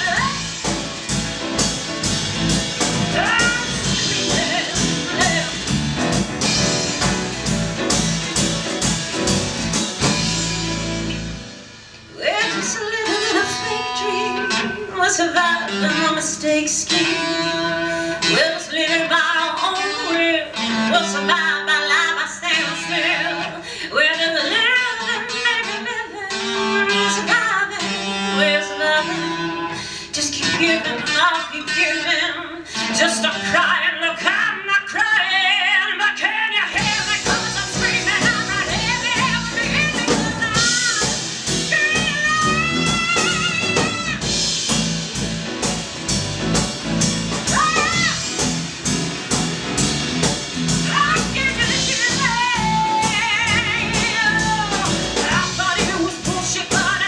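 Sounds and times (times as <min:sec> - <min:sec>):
woman singing: 0:00.0 - 0:01.0, 0:02.8 - 0:07.1, 0:12.1 - 0:44.8, 0:47.4 - 0:48.5, 0:50.7 - 0:57.0
electric bass: 0:00.0 - 0:11.8, 0:36.8 - 0:57.0
band playing: 0:00.0 - 0:19.0, 0:36.7 - 0:57.0.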